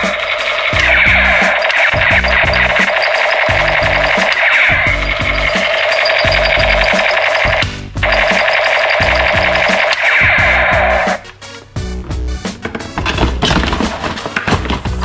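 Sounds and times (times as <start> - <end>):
toy machine gun sound effect: 0.0 - 11.2
background music with steady beat: 0.0 - 15.0.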